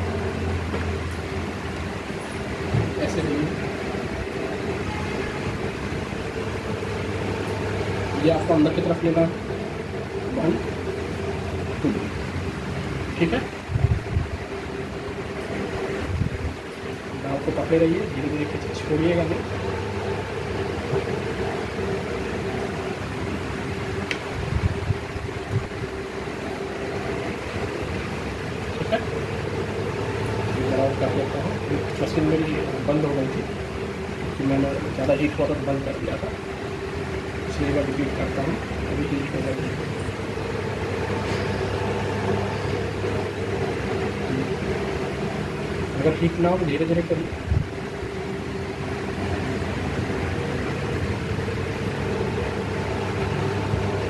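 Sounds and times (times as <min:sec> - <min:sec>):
mechanical hum: 0:00.0 - 0:54.0.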